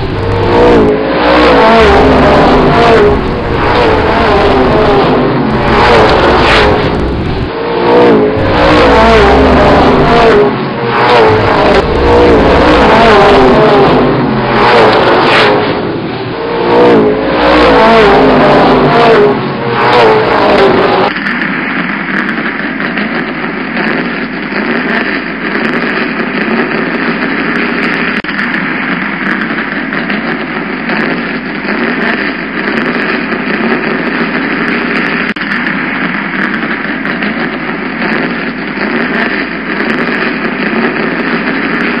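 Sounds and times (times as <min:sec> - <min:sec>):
vehicle engine and road noise: 0:00.0 - 0:42.0.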